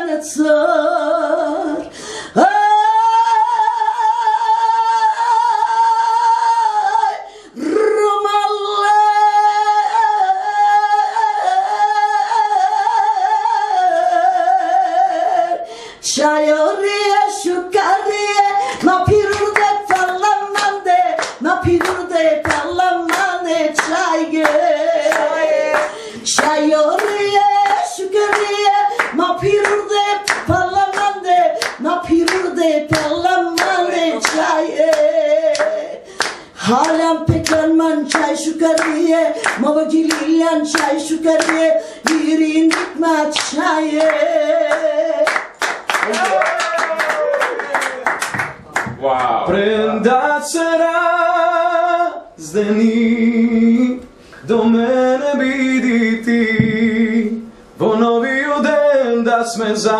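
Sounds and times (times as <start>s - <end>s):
woman singing a cappella: 0.0s - 45.8s, 49.6s - 59.9s
hands clapping a beat: 18.8s - 49.4s.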